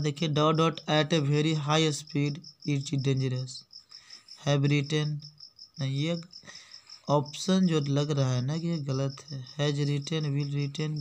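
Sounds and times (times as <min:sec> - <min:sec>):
man speaking: 0:00.0 - 0:03.7, 0:04.4 - 0:06.4, 0:07.1 - 0:11.0
high-pitched pulsing chirp: 0:00.0 - 0:11.0.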